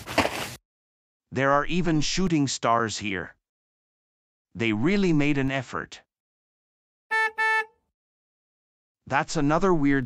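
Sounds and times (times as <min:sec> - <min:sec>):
horn honking: 0:07.1 - 0:07.8.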